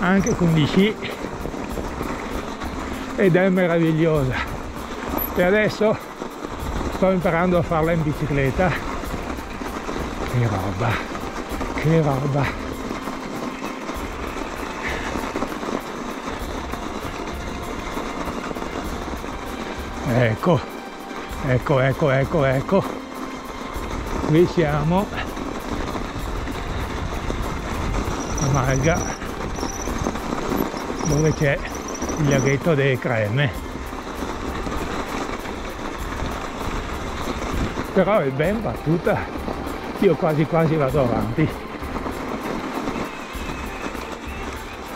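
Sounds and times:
bike tyres rushing on snow: 0:00.0 - 0:44.9.

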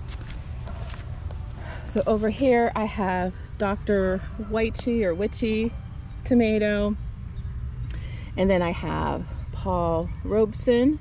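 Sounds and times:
low microphone rumble: 0:00.0 - 0:11.0.

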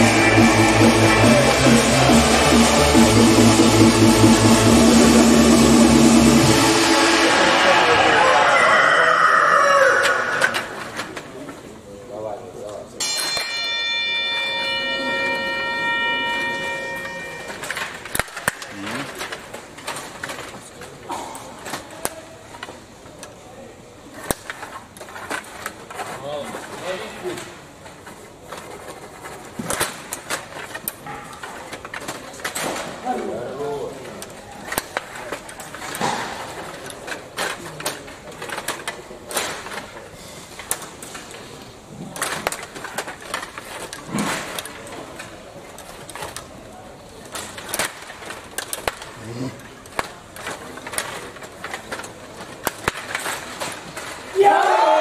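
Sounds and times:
table hockey rods and puck clicking: 0:17.0 - 0:20.9, 0:24.2 - 0:26.8, 0:27.8 - 0:32.8, 0:34.1 - 0:46.6, 0:47.2 - 0:54.3.

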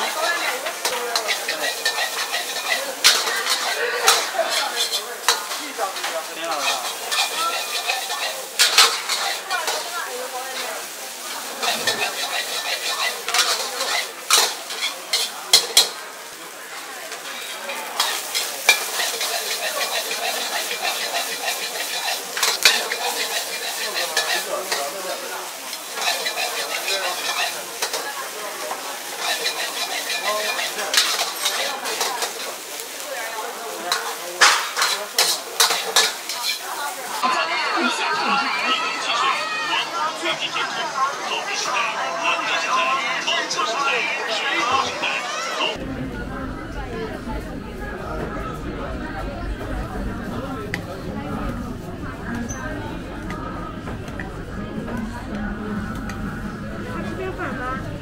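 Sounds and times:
ladle scraping wok: 0:00.0 - 0:16.3, 0:17.1 - 0:39.6
rice sizzling in a wok: 0:00.0 - 0:57.9
crowd chatter: 0:00.0 - 0:58.0
ladle clanking against wok: 0:00.1 - 0:09.9, 0:11.5 - 0:16.0, 0:17.2 - 0:24.9, 0:25.7 - 0:32.9, 0:33.9 - 0:36.7.

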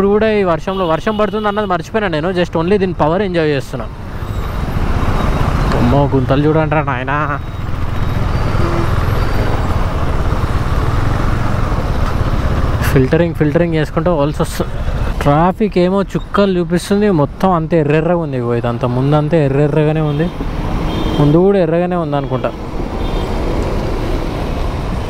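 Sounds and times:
road noise: 0:00.0 - 0:25.0
motorcycle engine rumbling: 0:03.9 - 0:25.0.

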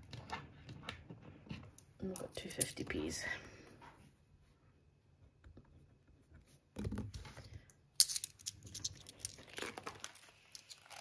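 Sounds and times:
coins handled on a table: 0:07.4 - 0:11.0.

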